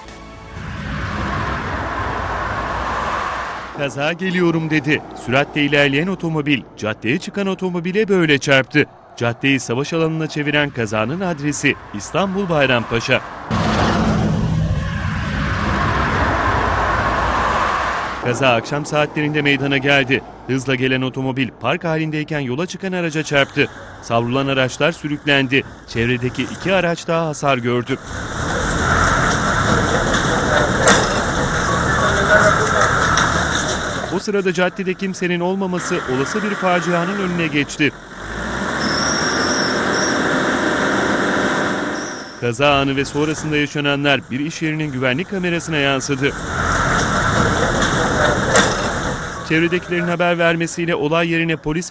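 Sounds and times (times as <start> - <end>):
street noise: 0.0 - 51.9
high-pitched whine: 0.4 - 6.8, 8.5 - 19.9, 22.7 - 38.1, 38.7 - 50.2
car engine running loudly: 0.5 - 3.8, 10.8 - 18.3, 27.9 - 50.2
car engine running: 27.9 - 34.2, 42.7 - 50.2.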